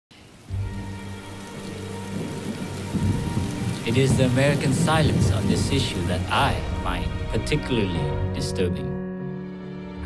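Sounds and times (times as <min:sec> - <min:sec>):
steady rain: 0:00.1 - 0:08.4
low rumble of thunder: 0:00.7 - 0:07.5.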